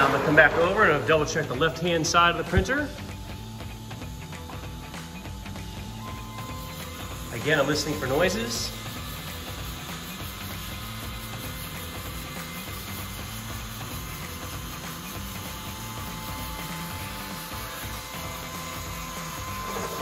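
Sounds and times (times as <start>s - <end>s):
printer motors and fans humming: 0.0s - 20.0s
thin steady whine: 0.0s - 20.0s.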